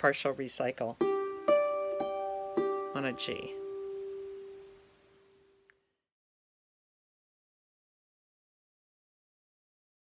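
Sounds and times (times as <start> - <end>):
faint click: 5.5 - 5.8.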